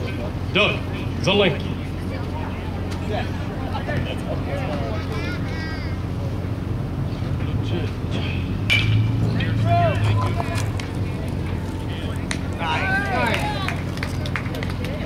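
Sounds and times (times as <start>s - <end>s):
spectators' voices: 0.0s - 15.0s
steady low hum: 0.0s - 15.0s
baseball bat hitting ball: 8.2s - 10.9s.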